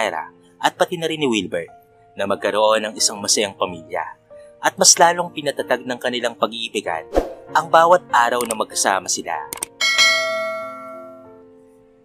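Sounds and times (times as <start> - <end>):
bright bell chime: 9.8 - 11.2.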